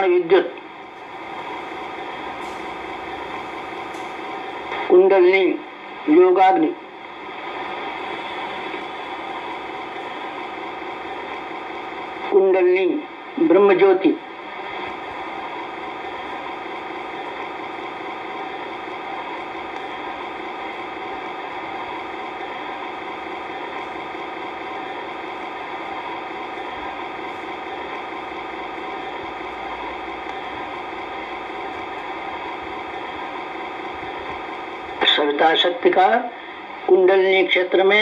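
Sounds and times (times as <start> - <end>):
steady hum of held pitches: 0.0 - 38.0.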